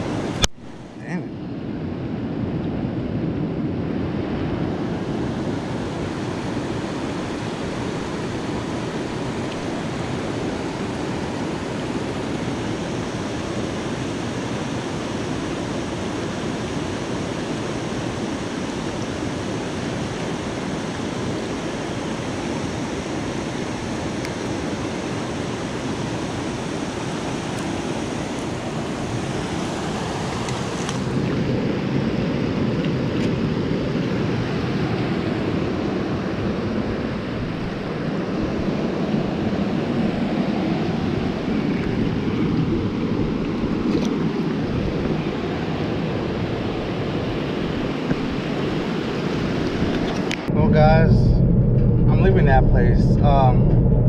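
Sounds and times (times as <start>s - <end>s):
water rushing over rocks: 5.2s - 31.7s.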